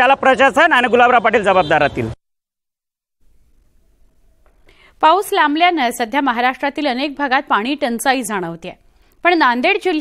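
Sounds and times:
soft intake of breath: 4.6 - 5.0.

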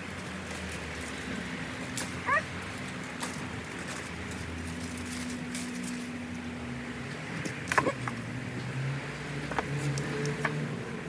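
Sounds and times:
plants rustling: 0.0 - 8.8
stems snapping: 0.2 - 6.4, 9.4 - 10.6.

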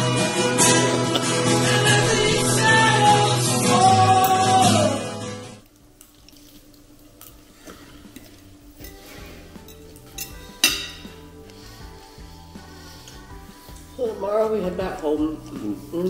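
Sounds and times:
music with sung melody: 0.0 - 5.6, 8.9 - 16.0
cutlery clinking on plates: 8.2 - 11.2.

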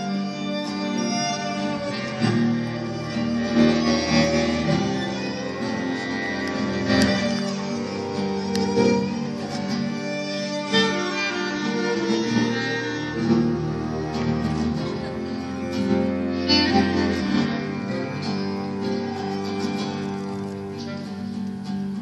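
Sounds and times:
acoustic guitar strumming: 0.0 - 22.0
cello bowing: 0.0 - 22.0
violin bowing: 0.0 - 22.0.

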